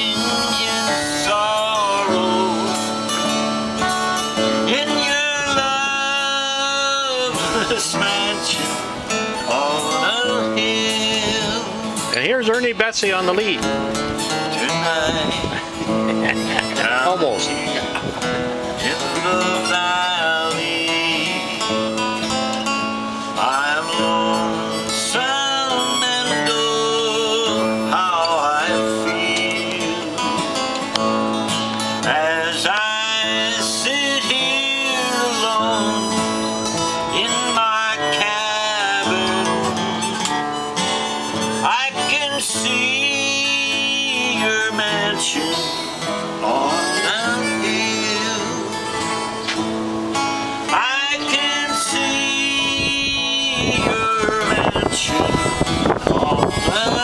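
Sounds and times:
harmonica playing: 0:00.0 - 0:57.0
strummed acoustic guitar: 0:00.0 - 0:57.0.

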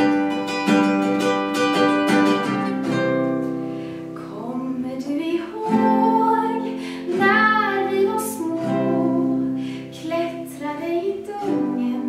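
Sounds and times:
acoustic guitar: 0:00.0 - 0:12.0
woman singing: 0:04.2 - 0:12.0.

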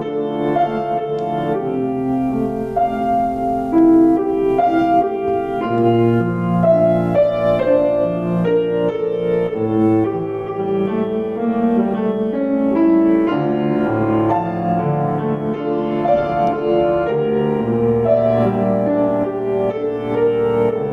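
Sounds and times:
grand piano playing: 0:00.0 - 0:20.9.

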